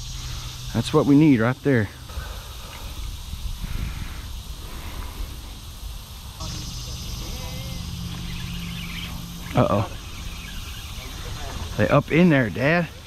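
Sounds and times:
engine hum: 0.0s - 13.0s
steady low rumble: 0.0s - 13.0s.

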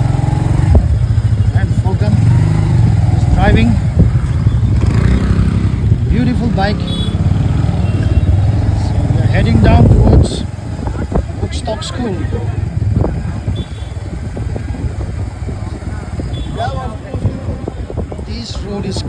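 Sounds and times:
people's voices on street: 0.0s - 19.0s
vehicle engines running: 0.0s - 19.0s.

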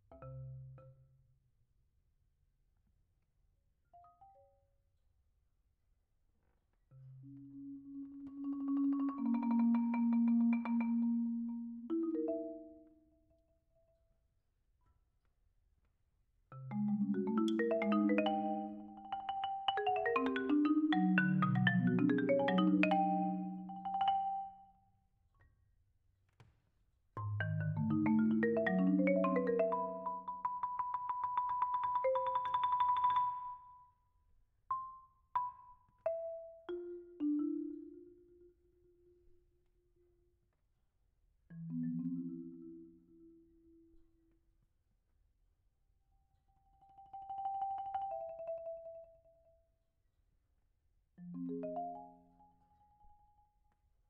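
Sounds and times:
marimba notes: 7.3s - 12.9s, 16.7s - 24.6s, 27.2s - 33.6s, 41.6s - 43.2s, 51.2s - 52.6s.

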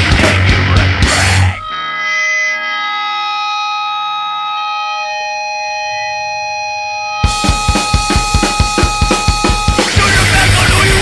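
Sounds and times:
guitar amplifier feedback whine: 0.0s - 11.0s.

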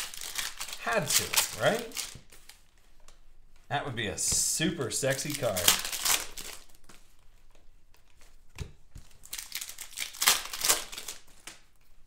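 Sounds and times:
foil pack crinkling: 0.0s - 2.7s, 5.0s - 6.9s, 9.1s - 11.8s.

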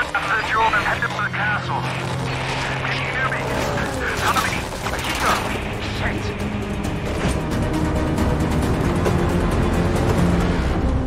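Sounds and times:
low road rumble: 0.0s - 11.0s.

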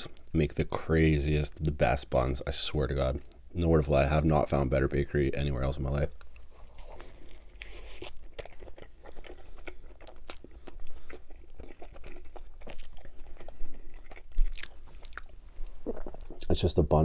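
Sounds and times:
close chewing mouth clicks: 7.2s - 16.5s.

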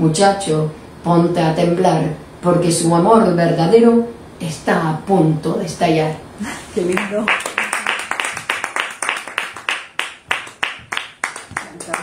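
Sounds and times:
hands clapping in applause: 7.0s - 12.0s.

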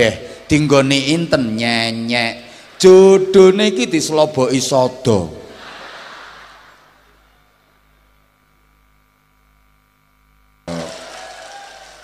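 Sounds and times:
audience laughter: 5.5s - 7.2s.

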